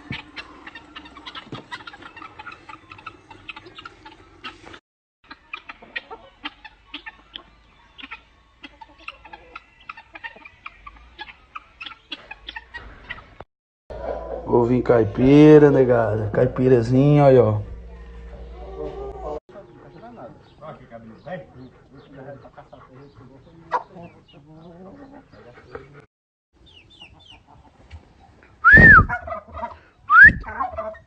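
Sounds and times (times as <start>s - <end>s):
guinea fowl and chickens clucking: 0.0s - 13.4s, 17.9s - 26.0s, 26.6s - 31.0s.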